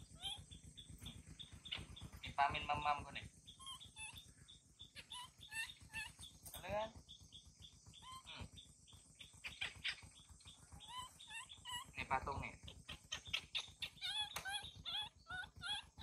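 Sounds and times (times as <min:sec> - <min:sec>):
baby macaque whimpering: 0:00.0 - 0:00.6, 0:03.5 - 0:06.4, 0:07.9 - 0:08.6, 0:09.2 - 0:16.0.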